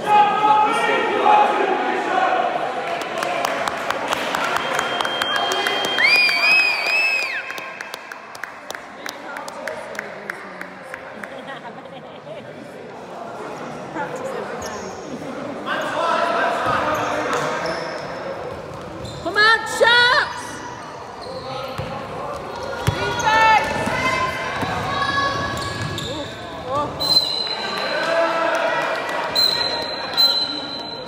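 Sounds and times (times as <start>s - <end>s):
voices in echoing hall: 0.0s - 31.0s
trainers squeaking on court: 16.6s - 19.6s, 20.7s - 28.1s, 29.4s - 31.0s
basketball bouncing: 22.8s - 24.0s.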